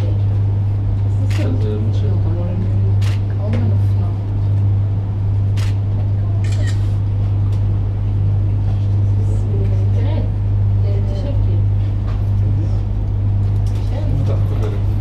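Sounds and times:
loud low hum: 0:00.0 - 0:15.0.

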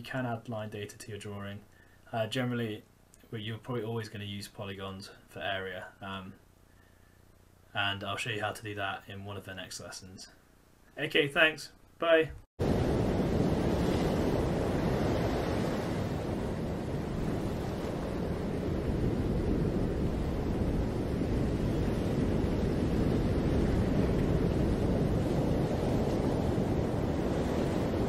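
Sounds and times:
ocean waves breaking: 0:12.6 - 0:28.0.

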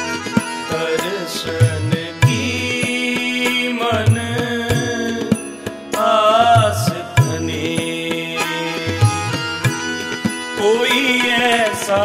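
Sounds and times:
harmonium chords: 0:00.0 - 0:12.0
tabla strokes: 0:00.0 - 0:12.0
man singing a wavering note: 0:00.6 - 0:05.4.

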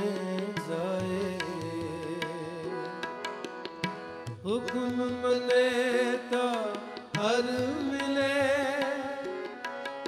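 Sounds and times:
harmoniums holding notes: 0:00.0 - 0:10.0.

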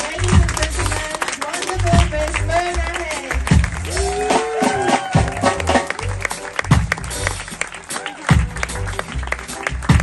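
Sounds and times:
bass notes: 0:00.0 - 0:10.0
jazz band playing: 0:00.0 - 0:10.0
drum kit hits and cymbals: 0:03.5 - 0:07.6.

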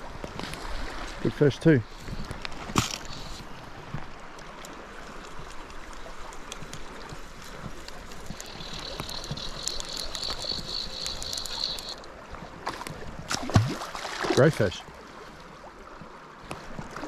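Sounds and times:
river current flowing: 0:00.0 - 0:17.0
small clicks and splashes: 0:01.9 - 0:14.8.

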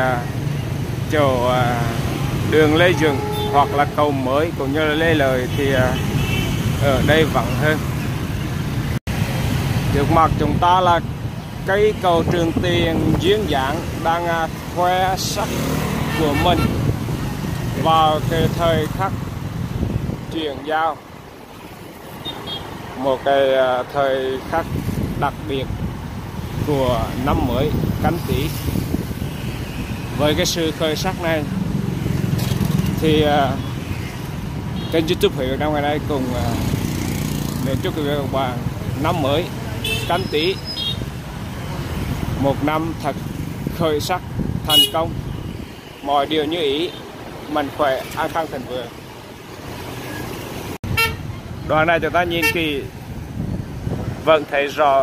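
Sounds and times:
motorbike and scooter traffic: 0:00.0 - 0:55.0.

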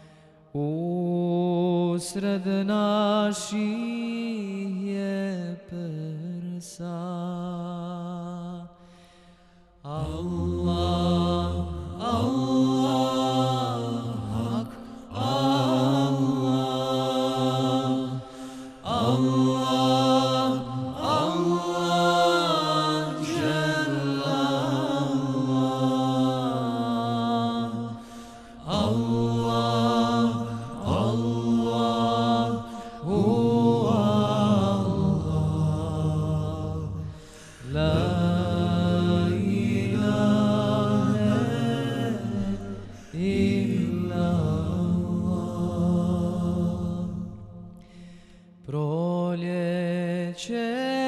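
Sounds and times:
low vocal drone: 0:09.8 - 0:47.8.

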